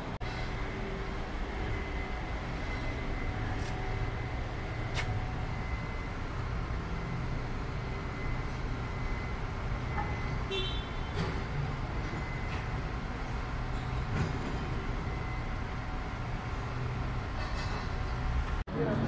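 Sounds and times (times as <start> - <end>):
road vehicles rumbling past: 0.0 - 19.0.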